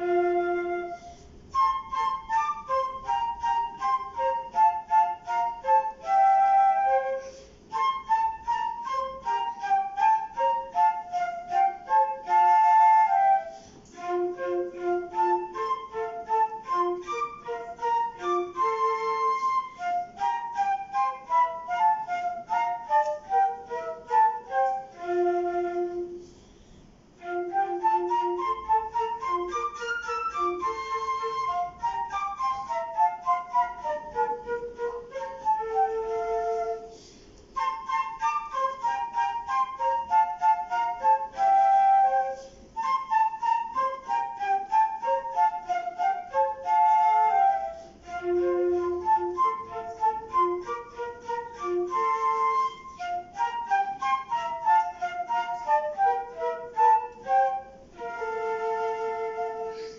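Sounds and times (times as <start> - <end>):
flute playing classical piece: 0.0 - 59.9
second wind instrument: 0.0 - 59.9.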